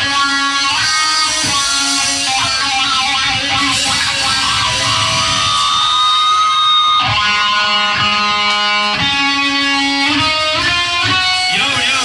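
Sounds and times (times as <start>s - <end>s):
drum and cymbal hits: 0.0s - 12.0s
electric guitars and bass: 0.0s - 12.0s.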